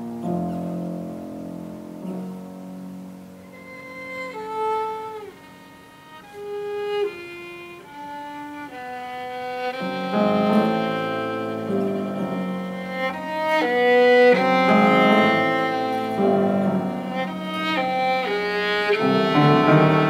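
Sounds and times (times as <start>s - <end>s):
piano chords: 0.0s - 20.0s
violin melody: 0.0s - 20.0s.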